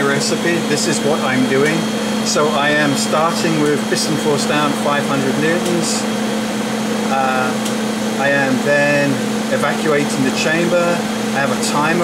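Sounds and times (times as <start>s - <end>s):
person speaking: 0.0s - 6.2s, 7.0s - 12.0s
vacuum pump humming: 0.0s - 12.0s.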